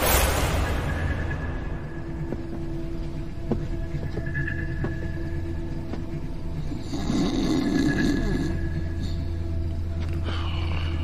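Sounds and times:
low background music drone: 0.0s - 11.0s.

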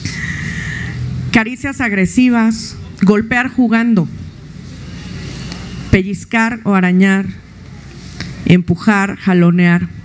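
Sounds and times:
woman speaking: 1.3s - 4.2s, 5.9s - 7.4s, 8.4s - 10.0s.

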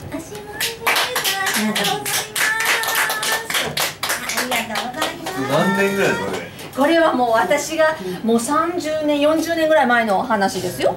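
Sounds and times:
small audience applauding: 0.6s - 5.8s.

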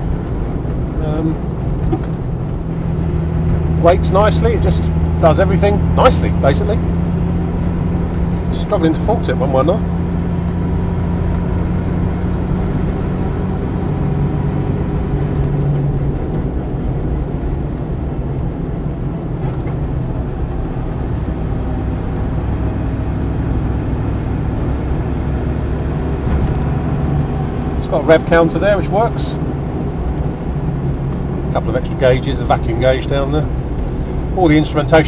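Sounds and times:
engine running while driving: 0.0s - 35.0s
road and drivetrain noise: 0.0s - 35.0s.

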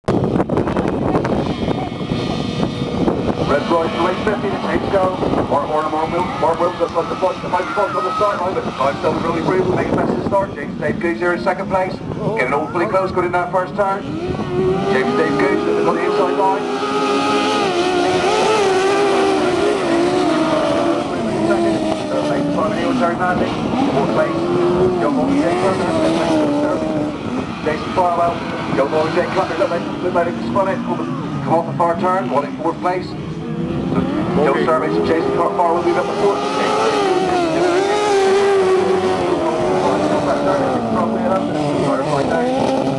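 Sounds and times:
wind on microphone: 0.1s - 30.0s
racing engines revving: 0.1s - 42.9s
loudspeaker commentary voice: 3.4s - 14.2s, 14.8s - 16.8s, 19.2s - 27.0s, 27.6s - 33.2s, 34.0s - 42.7s.

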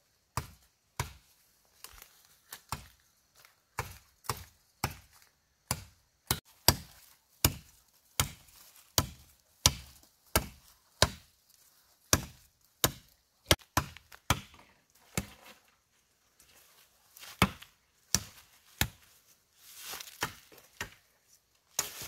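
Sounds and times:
machete chopping woody stem: 3.8s - 11.3s, 12.1s - 15.3s, 17.4s - 19.0s, 20.1s - 21.0s.

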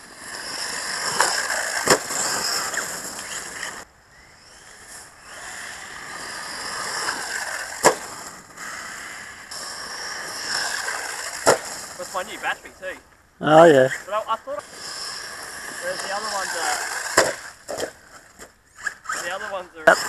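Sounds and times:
tyres rushing on dirt: 0.0s - 3.9s, 4.6s - 13.1s, 13.8s - 20.0s
electric motor whine: 0.0s - 12.2s, 14.6s - 17.9s
toy car landing thuds: 7.8s - 8.1s, 11.3s - 11.8s, 17.0s - 18.5s.

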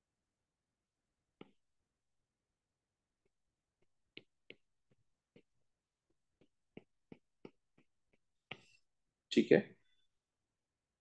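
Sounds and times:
stylus tapping glass screen: 3.2s - 9.0s.

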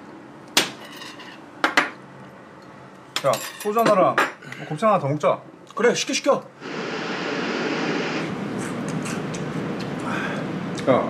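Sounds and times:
tableware clinking: 0.8s - 1.4s, 3.2s - 4.4s.

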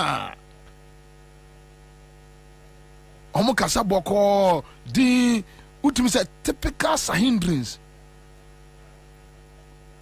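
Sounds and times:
loud voice: 0.0s - 0.4s
electrical mains hum: 0.0s - 10.0s.

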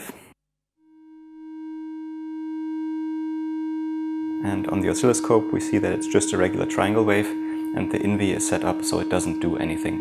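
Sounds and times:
steady electronic tone: 0.8s - 10.0s.

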